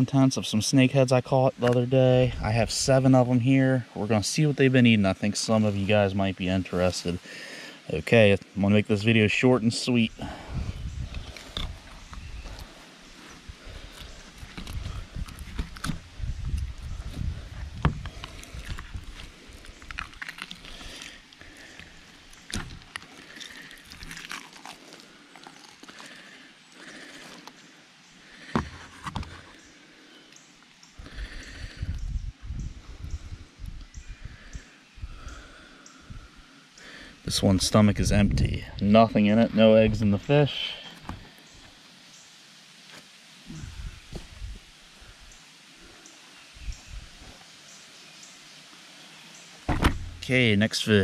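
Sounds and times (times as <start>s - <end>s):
wind buffeting microphone: 10.2s - 12.6s, 13.4s - 19.2s, 31.1s - 35.4s, 38.0s - 38.8s, 43.5s - 44.7s, 46.6s - 47.3s
hands pulling fish apart on cardboard: 17.8s - 26.1s.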